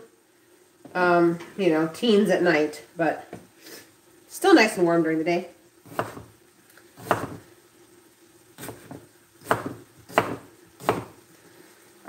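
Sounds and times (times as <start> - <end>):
knife chopping on wooden board: 5.9 - 6.3, 7.0 - 7.4, 8.6 - 11.2.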